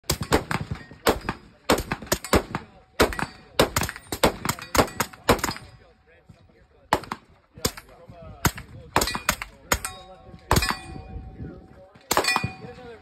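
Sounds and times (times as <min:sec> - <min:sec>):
carbine gunshots: 0:00.0 - 0:05.7, 0:06.9 - 0:11.0, 0:12.0 - 0:12.8.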